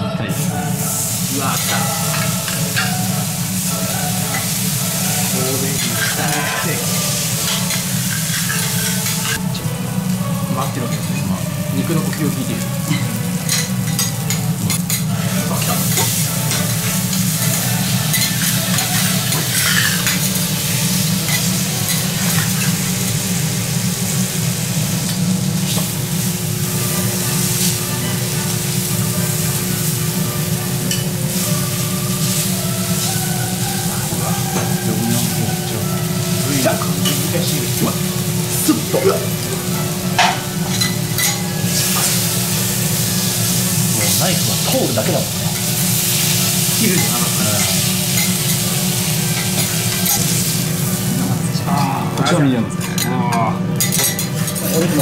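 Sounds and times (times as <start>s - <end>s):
steaks sizzling on a griddle: 0.3s - 52.3s, 53.7s - 55.0s.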